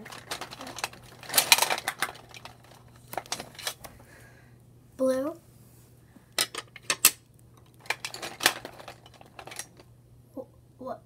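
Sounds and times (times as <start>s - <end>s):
colored pencils clattering: 0.0s - 3.8s, 6.4s - 9.9s.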